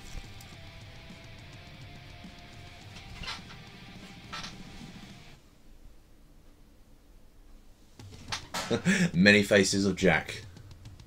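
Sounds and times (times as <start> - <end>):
faint background music: 0.0 - 5.5, 6.7 - 11.0.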